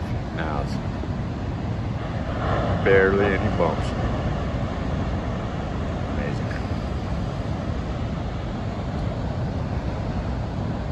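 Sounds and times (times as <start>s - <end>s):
ocean surf breaking: 0.0s - 10.9s
wind rumbling on microphone: 0.0s - 10.9s.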